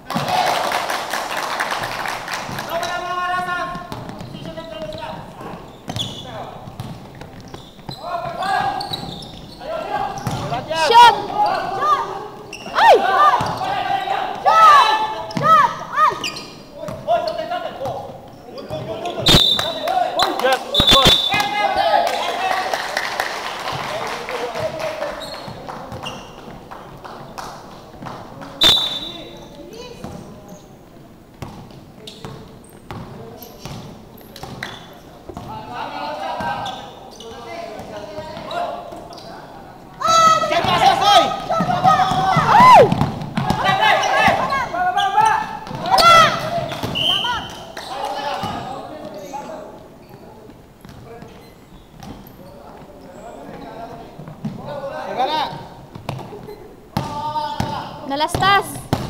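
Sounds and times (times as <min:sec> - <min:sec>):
people clapping: 0:00.0 - 0:02.9, 0:19.6 - 0:20.7, 0:21.3 - 0:28.6, 0:47.6 - 0:48.4
shoe squeaks: 0:04.1 - 0:13.9, 0:14.8 - 0:21.5, 0:25.1 - 0:26.5, 0:28.6 - 0:29.6, 0:32.0 - 0:35.2, 0:36.3 - 0:40.5, 0:43.6 - 0:54.2, 0:56.1 - 0:56.8
players shouting: 0:07.9 - 0:16.4, 0:40.0 - 0:48.8.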